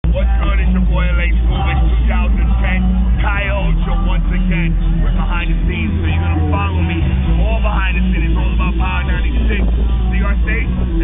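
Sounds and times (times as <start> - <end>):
low rumble of street noise: 0.0 - 11.0
man talking: 0.0 - 11.0.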